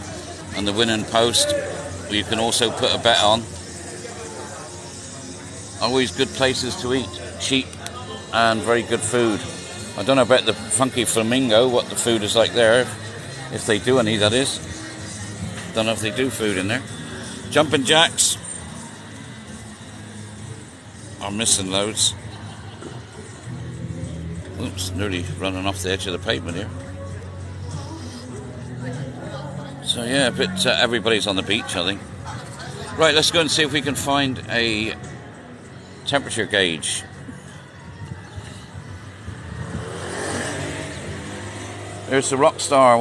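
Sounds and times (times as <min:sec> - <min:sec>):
road and wind noise: 0:00.0 - 0:43.0
traffic rumble: 0:00.0 - 0:43.0
motorbike engine speeding up: 0:39.4 - 0:42.5.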